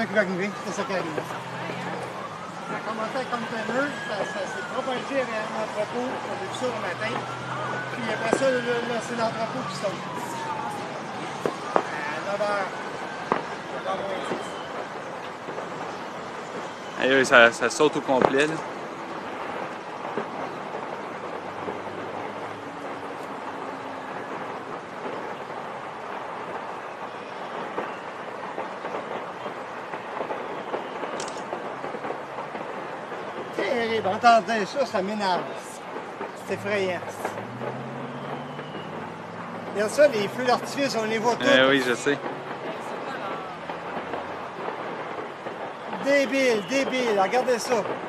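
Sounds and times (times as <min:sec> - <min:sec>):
fire pops and crackles: 0:00.0 - 0:48.0
large fire roaring: 0:00.0 - 0:48.0
steady outdoor rushing noise: 0:00.0 - 0:48.0.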